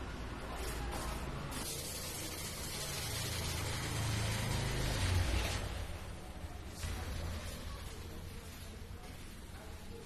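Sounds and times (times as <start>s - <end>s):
paste roller hissing on wallpaper: 0.7s - 5.7s.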